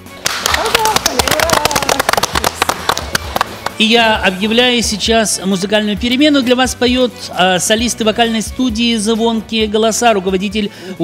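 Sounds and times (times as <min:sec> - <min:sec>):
small group clapping: 0:00.0 - 0:03.8.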